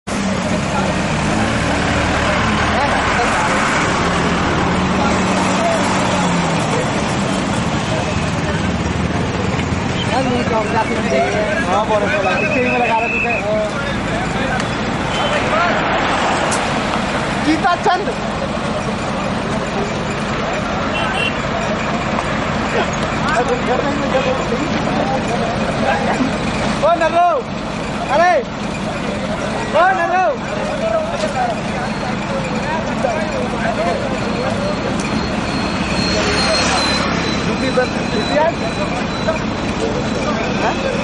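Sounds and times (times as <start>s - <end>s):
crowd talking: 0.0s - 41.0s
expressway traffic noise: 0.0s - 41.0s
heavy vehicle engine humming: 0.0s - 41.0s.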